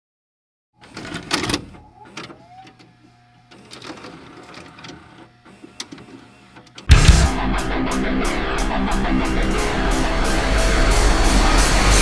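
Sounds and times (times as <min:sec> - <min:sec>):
heavy metal guitars and drums: 0:06.9 - 0:12.0.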